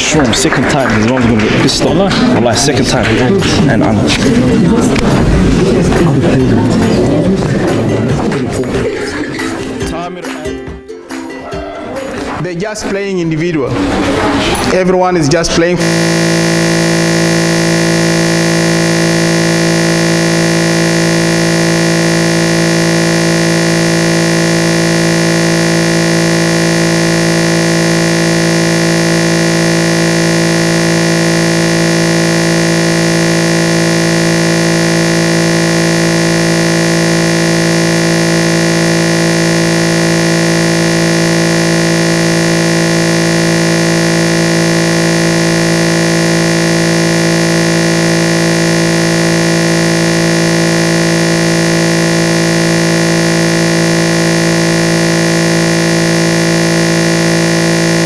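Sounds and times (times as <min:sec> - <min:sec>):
steady electronic buzz: 0:00.0 - 0:09.8, 0:14.6 - 0:58.0.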